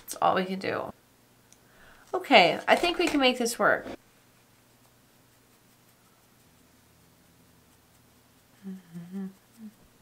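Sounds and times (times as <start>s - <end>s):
woman humming softly: 8.5s - 10.0s.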